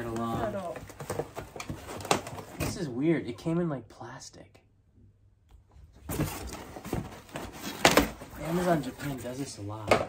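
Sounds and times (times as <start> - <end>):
cardboard box rustling and scraping: 6.1 - 9.6.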